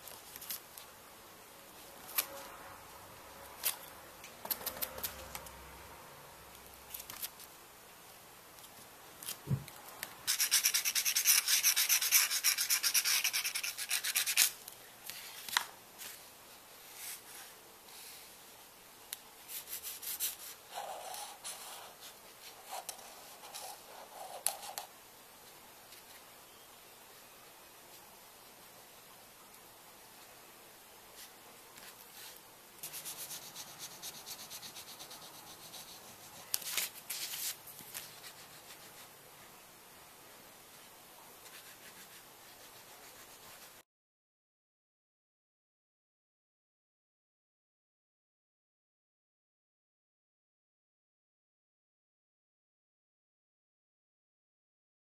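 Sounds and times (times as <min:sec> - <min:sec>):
rubbing strokes on paper: 0:10.3 - 0:15.4, 0:19.4 - 0:24.9, 0:31.2 - 0:39.2, 0:40.7 - 0:43.8.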